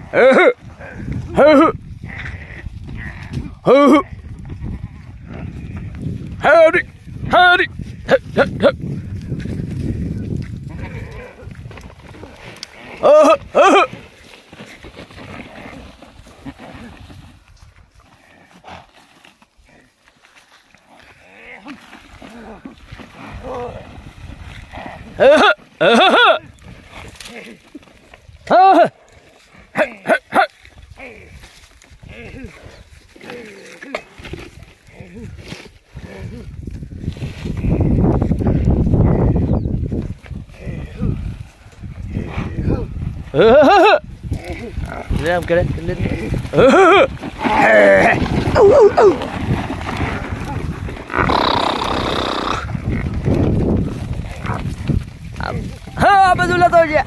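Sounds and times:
person calling drawn-out oh: 0:00.0 - 0:01.8, 0:03.6 - 0:04.1, 0:12.9 - 0:14.0, 0:25.2 - 0:26.5, 0:28.5 - 0:28.9, 0:42.6 - 0:44.0, 0:46.5 - 0:49.3
faint rustle: 0:08.9 - 0:25.8
water buffalo bellowing: 0:12.6 - 0:14.0, 0:21.0 - 0:27.6, 0:46.5 - 0:49.3, 0:51.1 - 0:53.1.

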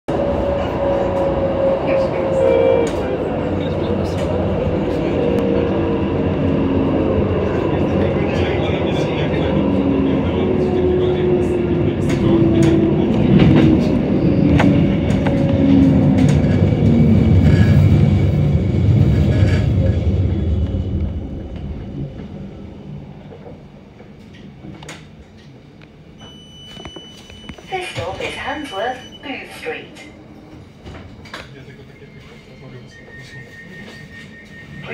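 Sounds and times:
tram motor whine: 0:00.1 - 0:25.3.

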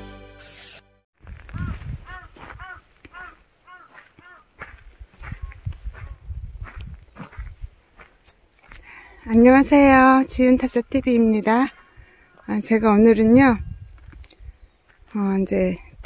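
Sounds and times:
footsteps on gravel: 0:01.2 - 0:10.1
crow cawing: 0:01.4 - 0:04.7, 0:11.7 - 0:12.5.

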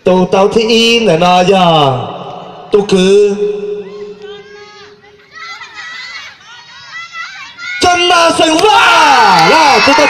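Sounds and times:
children chattering: 0:03.8 - 0:07.8.

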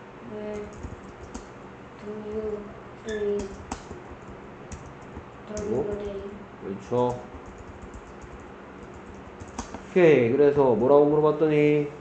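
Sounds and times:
computer keyboard typing: 0:00.5 - 0:01.5, 0:03.1 - 0:06.3, 0:06.9 - 0:09.8
person speaking: 0:05.4 - 0:07.5.

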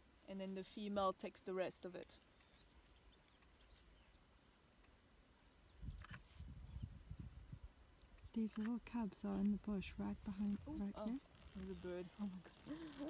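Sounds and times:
faint bird chirps: 0:02.2 - 0:13.0.

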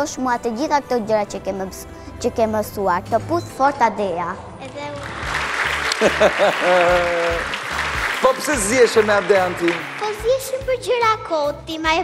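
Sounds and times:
background music: 0:00.0 - 0:12.0
audience applauding: 0:04.9 - 0:10.8
held voice: 0:06.6 - 0:07.5.

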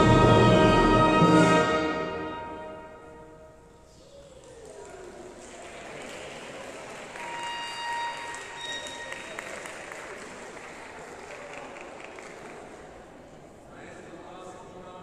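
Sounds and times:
orchestra note: 0:00.0 - 0:03.7
many people talking: 0:03.2 - 0:15.0
people moving about: 0:03.6 - 0:14.1.

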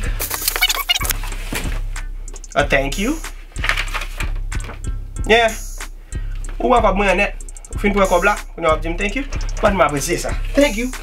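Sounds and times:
cardboard and paper handled: 0:03.6 - 0:04.4.

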